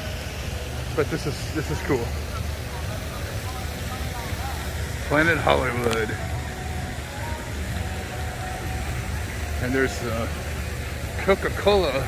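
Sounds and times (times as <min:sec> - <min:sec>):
faint distant voices: 0:00.0 - 0:12.0
low uneven rumble: 0:00.0 - 0:12.0.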